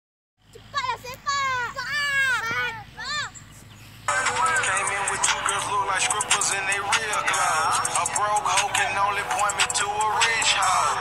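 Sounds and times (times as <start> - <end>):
children calling and shouting: 0.4 - 11.0.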